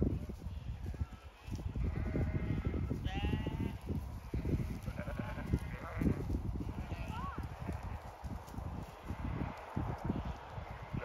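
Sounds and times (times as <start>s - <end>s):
sheep bleating: 1.8s - 3.8s, 4.4s - 7.8s.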